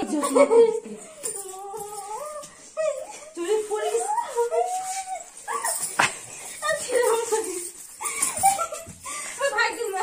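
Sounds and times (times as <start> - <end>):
woman's high-pitched whining cries: 0.0 - 6.0.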